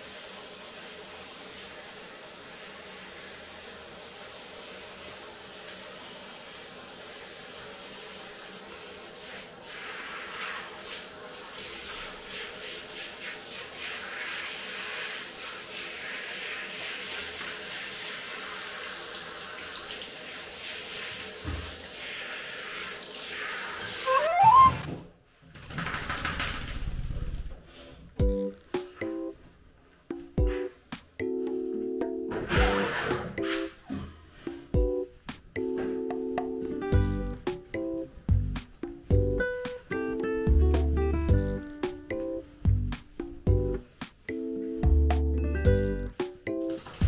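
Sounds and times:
shower head spraying water: 0.0s - 24.8s, 46.1s - 47.0s
short rising squeak: 24.0s - 25.0s
background music: 28.2s - 29.4s, 30.1s - 33.8s, 34.5s - 46.8s.

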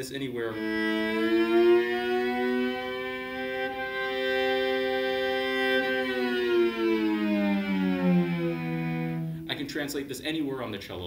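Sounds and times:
cello bowed double stop: 0.4s - 10.0s.

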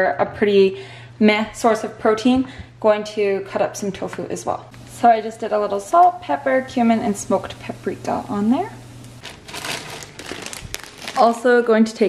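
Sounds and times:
sharp plastic crackles: 9.0s - 11.5s
plastic bag crinkling: 9.2s - 11.6s.

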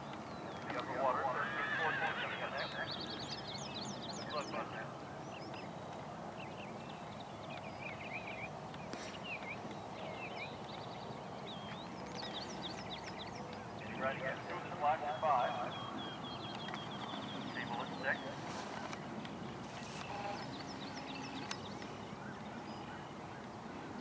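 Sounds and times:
birds chirping: 0.0s - 24.0s
horse whinnying: 1.4s - 2.5s.

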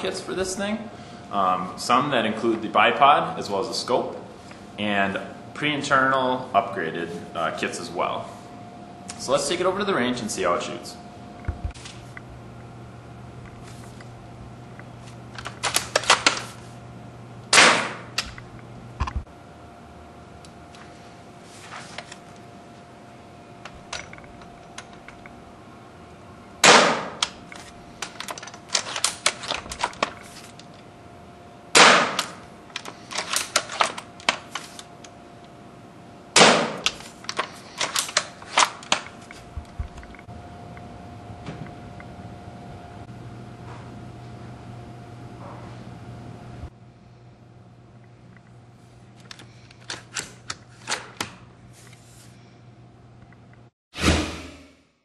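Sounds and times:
airsoft rifle shot cracks: 17.5s - 18.1s, 26.6s - 27.2s, 31.8s - 32.4s, 36.4s - 36.9s.

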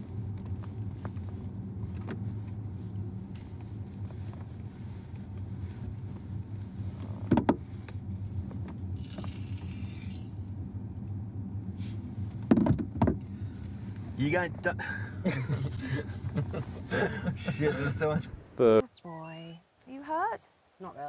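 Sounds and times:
car road and engine drone: 0.0s - 19.2s.

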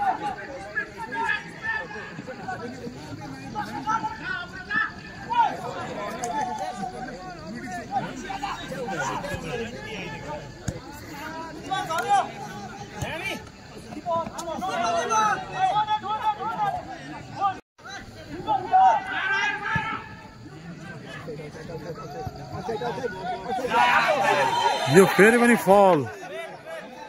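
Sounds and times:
spectators talking and calling out: 0.0s - 27.0s.

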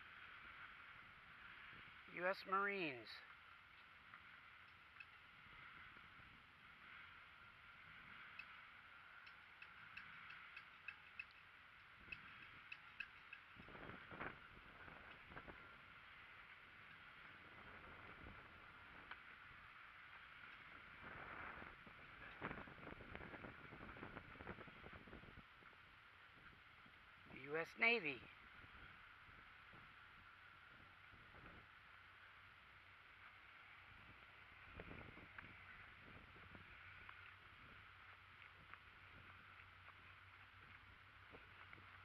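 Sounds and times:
steady low hiss: 0.0s - 42.0s
faint ticks: 3.3s - 24.6s, 32.2s - 42.0s.

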